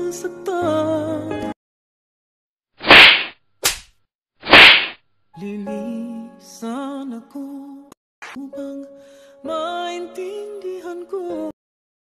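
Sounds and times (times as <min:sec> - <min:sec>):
falling swish: 0:02.8 - 0:05.0
whoosh sound effect: 0:04.4 - 0:05.0.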